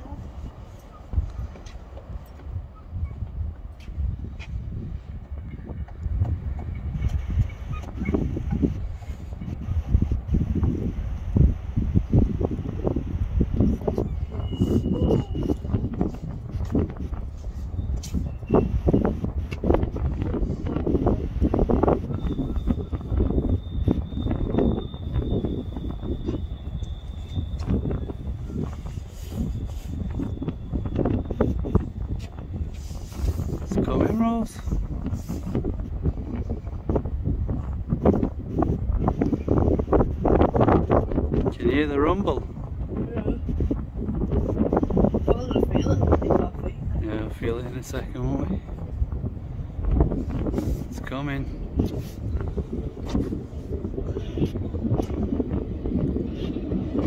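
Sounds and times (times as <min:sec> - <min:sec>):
wind rumbling on microphone: 0:00.0 - 0:57.0
footsteps on wooden boards: 0:03.7 - 0:08.0
thin steady high tone: 0:22.0 - 0:31.6.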